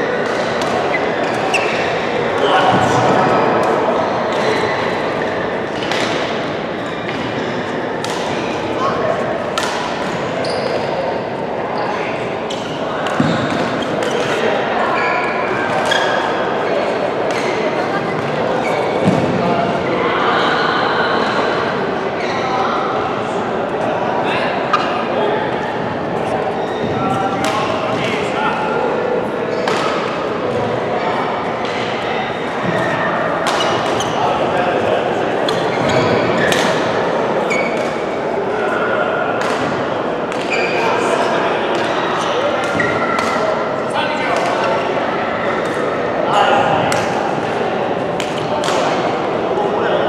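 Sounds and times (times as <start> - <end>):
crowd voices in hall: 0.0 - 50.0
rackets hitting shuttlecock: 0.2 - 1.9, 5.7 - 6.5, 8.0 - 8.5, 9.4 - 10.2, 12.5 - 14.4, 27.3 - 28.2, 33.4 - 34.2, 36.4 - 37.0, 39.4 - 40.6, 42.6 - 43.5, 46.8 - 47.3, 48.2 - 49.1.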